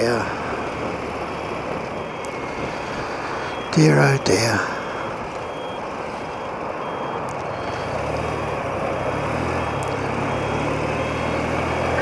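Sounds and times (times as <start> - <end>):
wind and road rush: 0.0 - 12.0
faint high beep: 2.0 - 7.9, 9.4 - 12.0
motorcycle engine: 7.5 - 12.0.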